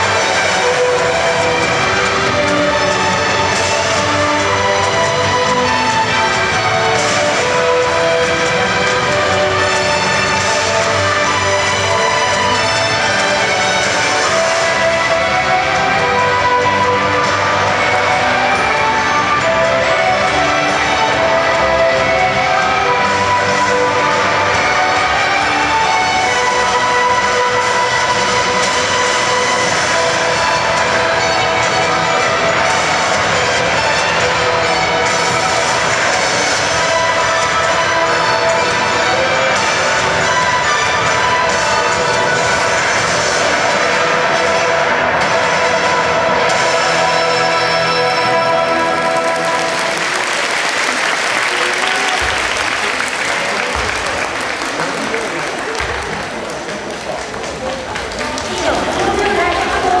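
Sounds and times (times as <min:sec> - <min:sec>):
ballroom dance music: 0:00.0 - 1:00.0
crowd applause and cheering: 0:00.0 - 1:00.0.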